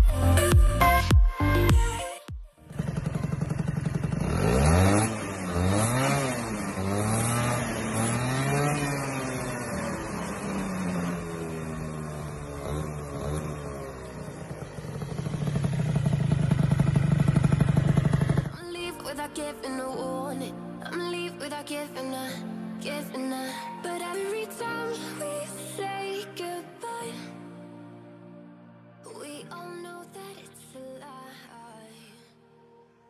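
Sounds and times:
two-stroke scooter engine revving: 2.7 - 18.7.

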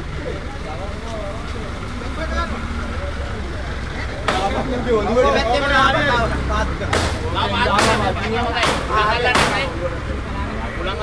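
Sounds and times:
distant people talking: 0.0 - 11.0.

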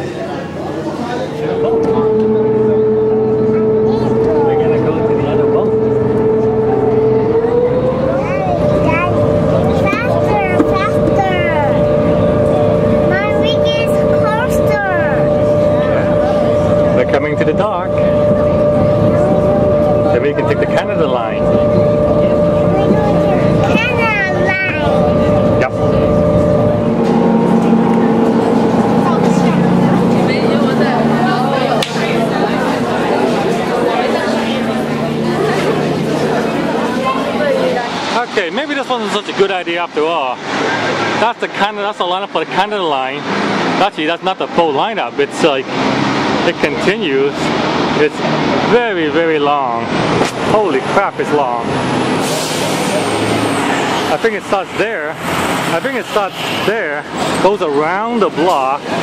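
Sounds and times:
crowd chatter: 0.0 - 59.0
ferry engines humming: 0.0 - 59.0.

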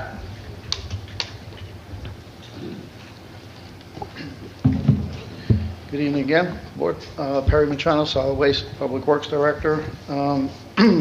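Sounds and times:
dull thumps on microphone: 4.6 - 5.8
man speaking: 5.9 - 11.0.

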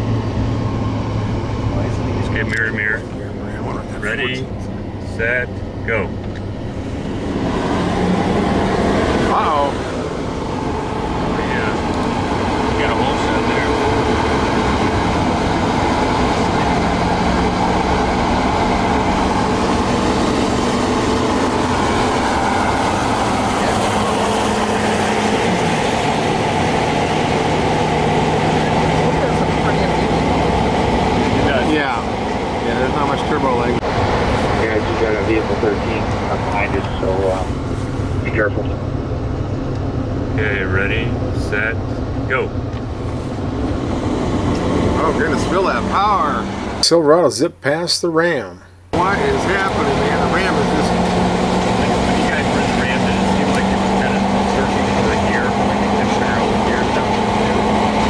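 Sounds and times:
diesel engine under load: 0.0 - 58.0
road and wind noise: 0.0 - 58.0
voices: 1.6 - 6.4, 7.5 - 37.6, 38.2 - 38.9, 40.3 - 42.6, 44.6 - 58.0.

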